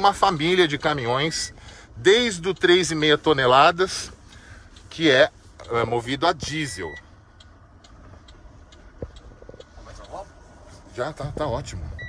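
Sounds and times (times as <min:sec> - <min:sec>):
low road rumble: 0:00.0 - 0:12.0
turn signal ticking: 0:00.0 - 0:12.0.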